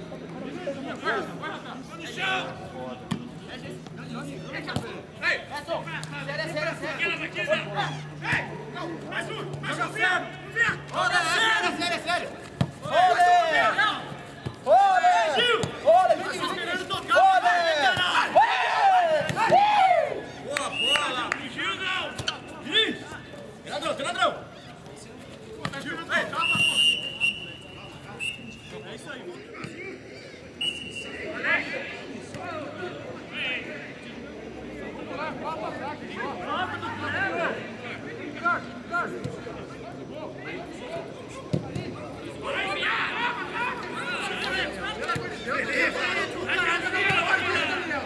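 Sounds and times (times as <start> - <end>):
footballers shouting: 0.4 - 34.0, 35.1 - 48.0.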